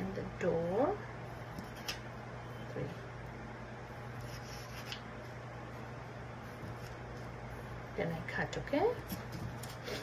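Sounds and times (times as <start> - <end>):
steady low hum: 0.0 - 10.0
pencil scratching on paper: 4.1 - 5.0.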